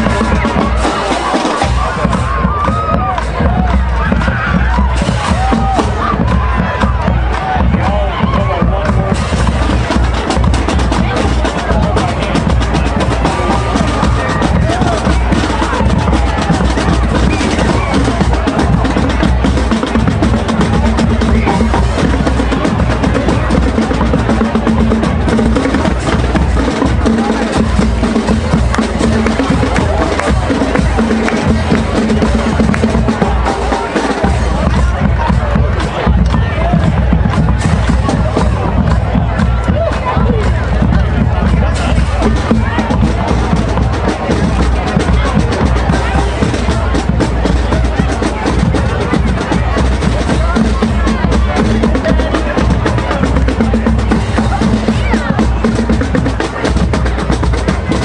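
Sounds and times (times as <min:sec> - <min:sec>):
bass drums: 0:00.0 - 0:58.0
brass instruments: 0:00.0 - 0:58.0
drum rolls: 0:00.0 - 0:58.0
marching band playing: 0:00.0 - 0:58.0
snare drums: 0:00.0 - 0:58.0.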